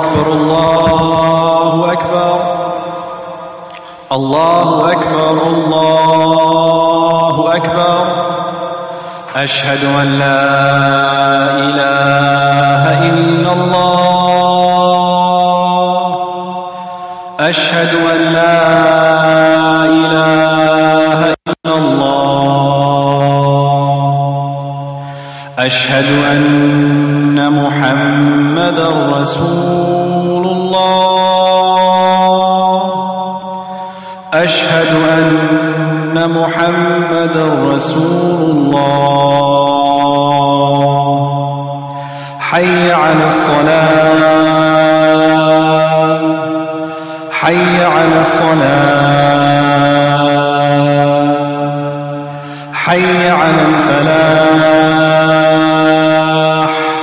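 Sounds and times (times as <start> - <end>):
person chanting call to prayer: 0.0 - 57.0.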